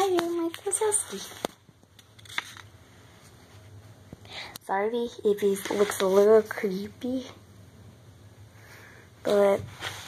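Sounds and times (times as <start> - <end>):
low steady hum: 0.0 - 10.0
faint rustling: 9.4 - 10.0.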